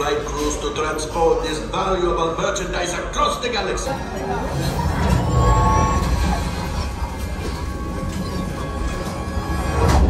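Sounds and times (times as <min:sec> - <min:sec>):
soundtrack music: 0:04.0 - 0:10.0.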